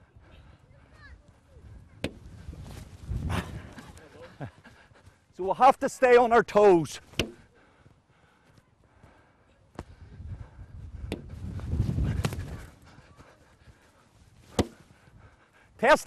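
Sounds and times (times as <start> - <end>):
ball bouncing off grass: 7.1 - 7.4, 12.2 - 12.5, 14.5 - 14.8
ball slapping into gloves: 7.1 - 7.4, 12.1 - 12.5, 14.5 - 14.8.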